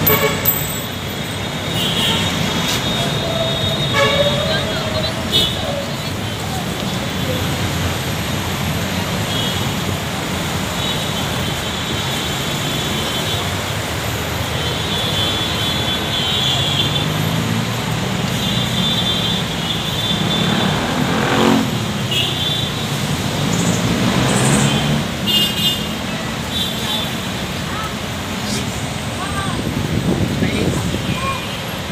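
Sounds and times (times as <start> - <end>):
vehicles passing: 0.0 - 31.9.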